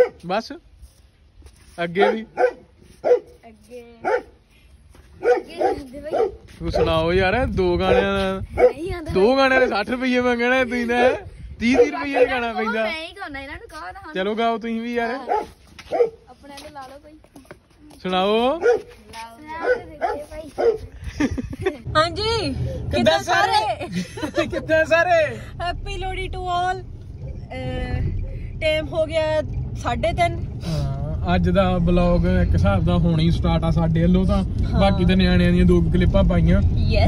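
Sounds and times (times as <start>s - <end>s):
dog barking: 0.0s - 0.3s, 1.9s - 3.4s, 4.0s - 4.4s, 5.2s - 7.0s, 7.9s - 8.8s, 11.0s - 12.6s, 15.2s - 16.3s, 18.6s - 20.9s
children laughing and giggling: 19.6s - 24.8s.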